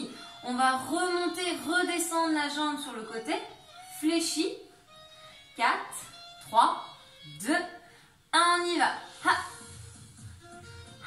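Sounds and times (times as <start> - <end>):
woman counting down: 0.0 - 4.7, 5.6 - 9.6
faint background music: 0.0 - 11.0.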